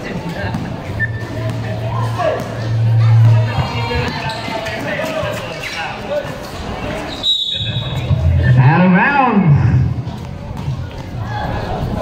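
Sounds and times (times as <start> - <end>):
crowd voices: 0.0 - 12.0
basketball bouncing on concrete: 0.4 - 2.6, 10.2 - 11.2.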